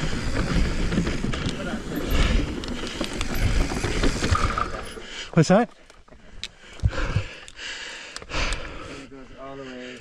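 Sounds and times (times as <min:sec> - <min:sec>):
mountain bike rattling on rocky trail: 0:00.0 - 0:07.3.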